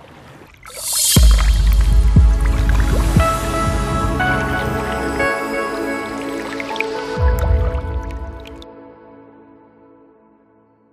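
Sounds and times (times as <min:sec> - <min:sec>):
liquid drip and splash effects: 0:00.0 - 0:08.7
deep low boom: 0:01.2 - 0:04.3
sustained synth chord: 0:01.2 - 0:08.4.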